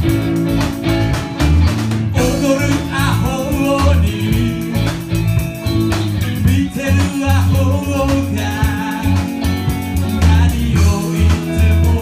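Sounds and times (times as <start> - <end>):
electric guitar: 0.0 - 12.0
heavy bass line: 0.0 - 12.0.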